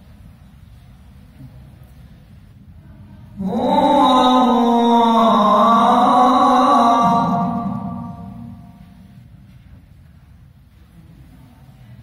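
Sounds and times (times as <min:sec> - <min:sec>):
man chanting into microphone: 0:03.4 - 0:09.0.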